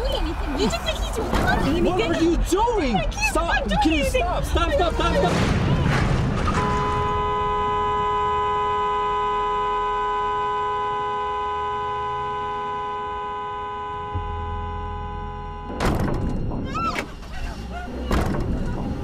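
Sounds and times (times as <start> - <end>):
two-tone car horn blast: 6.5 - 15.9.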